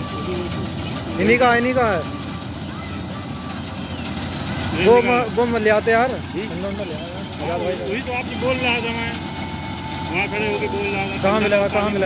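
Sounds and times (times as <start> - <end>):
combine harvester running: 0.0 - 12.0.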